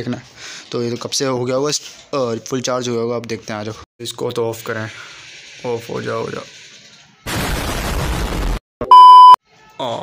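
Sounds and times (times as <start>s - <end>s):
deep rumbling explosion: 7.3s - 8.6s
high censor bleep: 8.8s - 9.4s.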